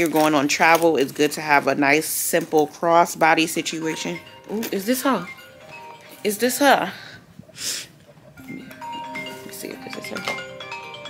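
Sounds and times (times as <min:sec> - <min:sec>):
phone ringtone marimba chimes: 0:03.4 - 0:07.0, 0:08.2 - 0:11.0.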